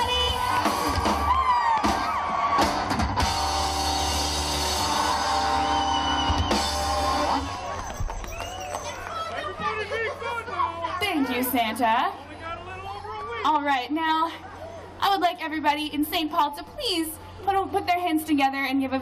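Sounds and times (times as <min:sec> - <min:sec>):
drum kit: 0:00.0 - 0:08.6
crowd noise and voices: 0:00.0 - 0:19.0.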